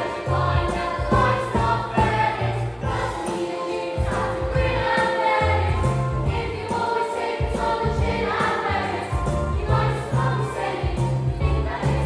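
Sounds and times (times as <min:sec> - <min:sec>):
group singing: 0:00.0 - 0:12.0.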